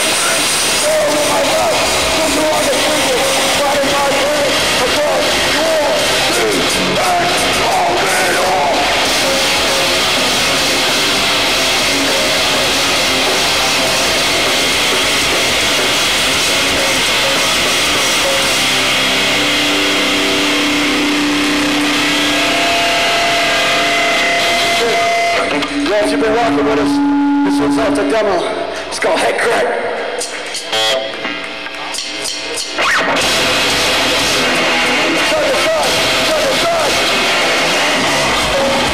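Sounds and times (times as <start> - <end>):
held guitar notes ringing: 0.0 - 28.9
distorted electric guitar noise: 0.0 - 38.9.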